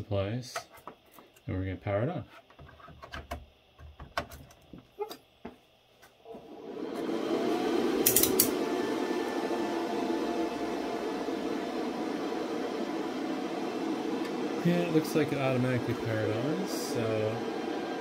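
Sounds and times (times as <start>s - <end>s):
server fans whirring: 3.2s - 18.0s.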